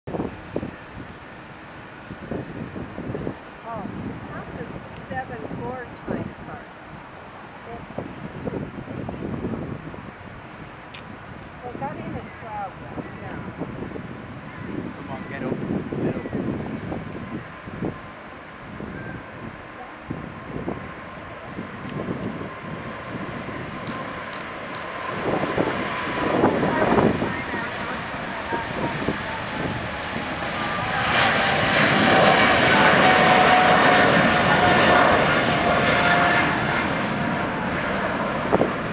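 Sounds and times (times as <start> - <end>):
jet engine whine: 0.1 - 38.9
jet engines at takeoff thrust: 0.1 - 38.9.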